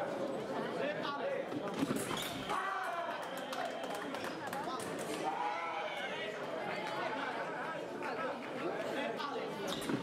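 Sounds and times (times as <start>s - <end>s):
chatter of overlapping voices: 0.0s - 2.0s, 2.6s - 10.0s.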